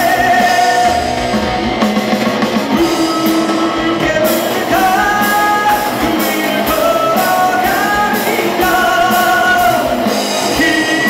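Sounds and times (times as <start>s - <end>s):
person singing: 0.0s - 1.9s, 2.5s - 11.0s
drum kit: 0.0s - 11.0s
electric guitars: 0.0s - 11.0s.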